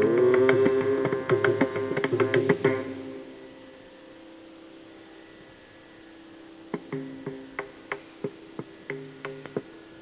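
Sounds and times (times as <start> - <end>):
accompanied music: 0.0 - 4.7, 6.1 - 10.0
faint steady drone: 0.0 - 10.0.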